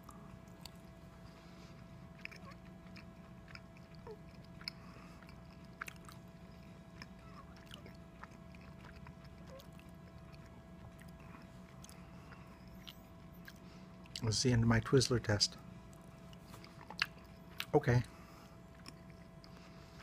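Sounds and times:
chewing clicks and smacks: 0:00.0 - 0:01.0, 0:01.8 - 0:14.3, 0:15.9 - 0:17.8, 0:18.7 - 0:19.7
faint steady hum: 0:00.0 - 0:20.0.

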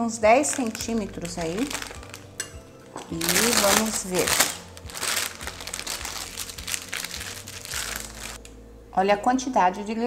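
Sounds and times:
plastic piping bag crinkling: 0:00.3 - 0:08.4.

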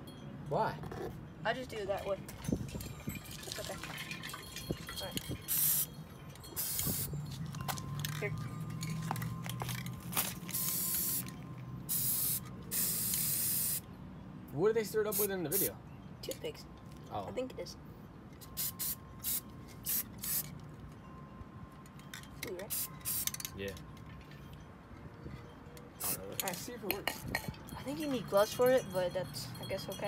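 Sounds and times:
spray paint can hissing: 0:05.5 - 0:05.9, 0:06.6 - 0:07.1, 0:10.5 - 0:11.3, 0:11.9 - 0:13.8, 0:18.6 - 0:20.5, 0:22.7 - 0:23.3.

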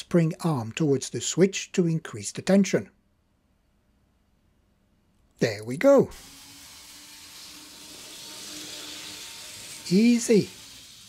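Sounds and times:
model train motor hissing: 0:06.1 - 0:11.0.

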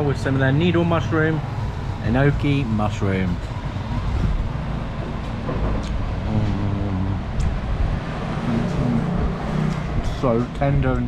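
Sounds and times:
road traffic rumble: 0:00.0 - 0:11.0
faint pitched engine tones: 0:06.2 - 0:07.4.

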